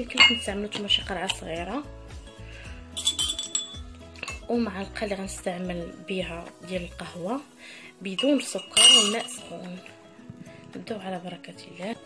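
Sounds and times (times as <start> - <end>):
background music: 0.0 - 12.0
teaspoon clinking on crockery: 0.1 - 1.4, 3.0 - 4.5, 8.1 - 9.6.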